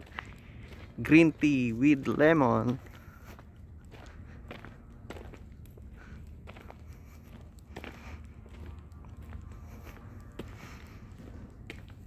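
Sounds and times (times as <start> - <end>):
footsteps on gritty ground: 0.0 - 12.0
low steady rumble: 0.0 - 12.0.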